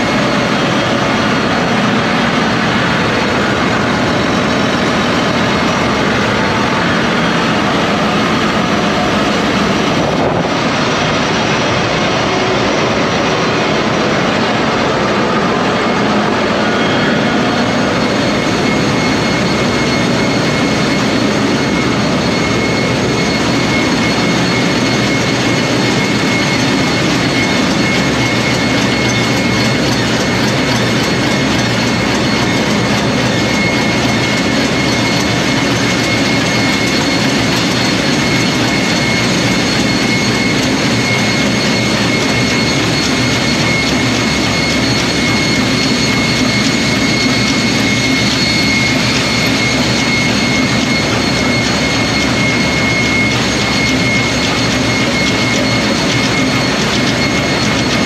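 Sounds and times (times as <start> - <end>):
diesel engines running: 0.0 - 58.0.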